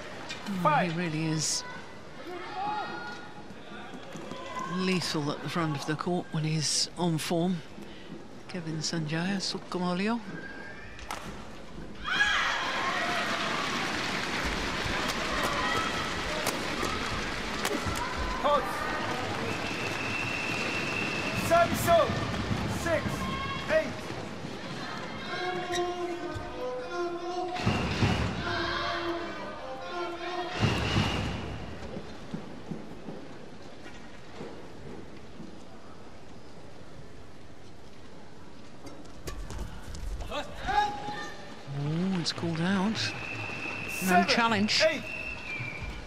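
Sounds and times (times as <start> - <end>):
crowd noise: 0.0 - 46.0
crowd cheering and calling out: 12.0 - 25.8
people clapping: 12.7 - 22.8
shoes squeaking on court: 25.3 - 26.6.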